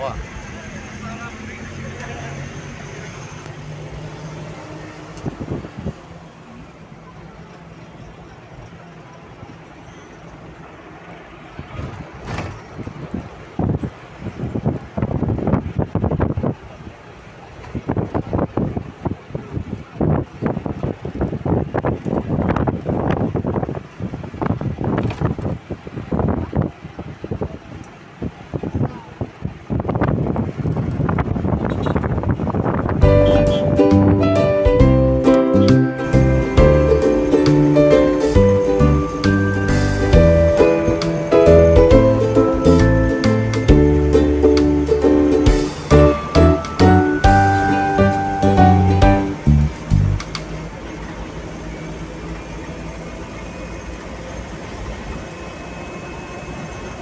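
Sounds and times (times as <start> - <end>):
vehicle engine hum: 0.0 - 57.0
wind buffeting microphone: 3.8 - 6.4, 11.5 - 35.0.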